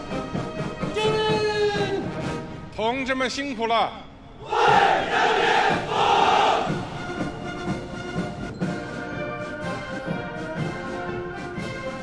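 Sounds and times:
soldiers shouting in unison: 4.4s - 6.9s.

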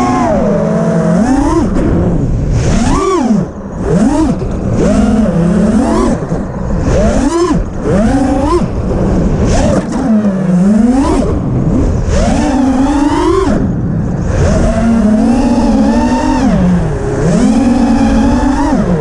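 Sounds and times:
quadcopter motors whining: 0.0s - 19.0s.

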